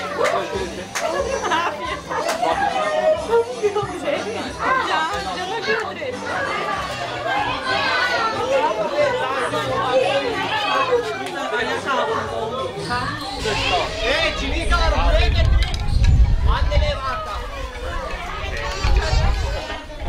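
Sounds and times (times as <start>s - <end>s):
adults and children chattering: 0.0s - 20.0s.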